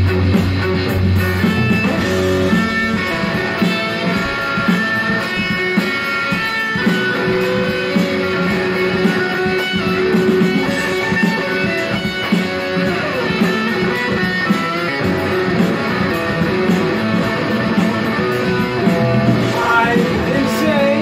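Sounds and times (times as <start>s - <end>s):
electric guitar riff: 0.0s - 21.0s.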